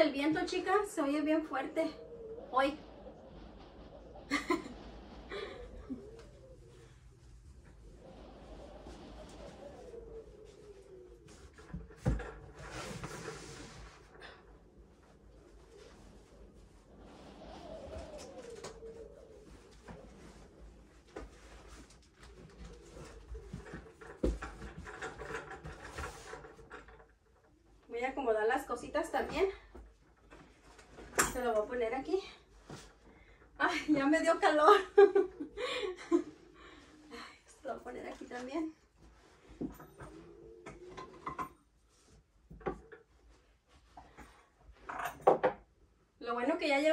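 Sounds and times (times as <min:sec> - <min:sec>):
wind gusting and whistling: 0:00.0 - 0:21.0.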